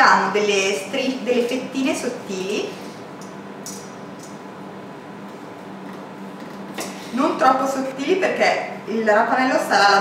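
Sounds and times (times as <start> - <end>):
room hiss and low hum: 0.0 - 10.0.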